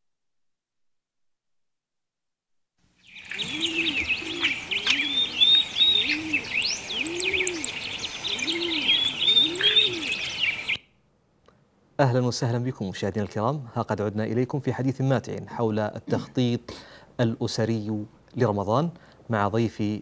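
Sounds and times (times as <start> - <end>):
small birds chirping: 3.0 - 11.0
dove cooing: 3.1 - 10.8.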